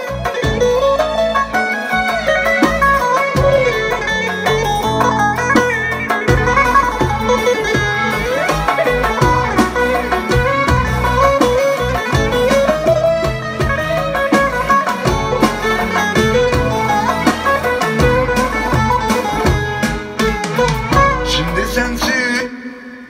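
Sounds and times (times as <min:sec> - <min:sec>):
folk music with plucked lute: 0:00.0 - 0:22.1
drum strikes: 0:02.1 - 0:22.2.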